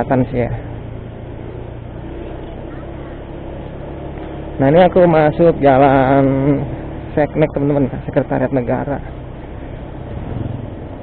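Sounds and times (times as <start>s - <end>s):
motor scooter engine humming: 0.0s - 11.0s
wind and road noise: 0.0s - 11.0s.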